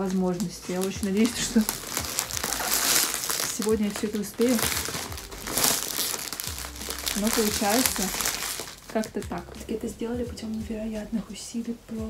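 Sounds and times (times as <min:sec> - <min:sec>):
plastic wrapping film crinkling: 0:00.0 - 0:11.1.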